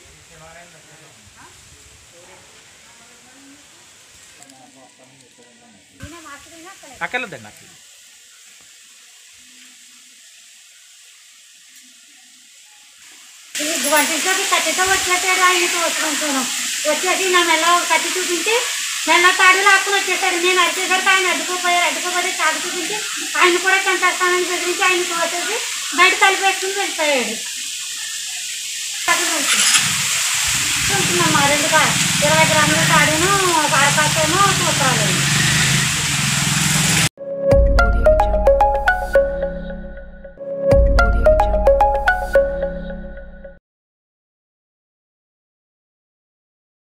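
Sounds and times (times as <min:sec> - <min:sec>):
faint steady hiss: 0:00.0 - 0:35.8.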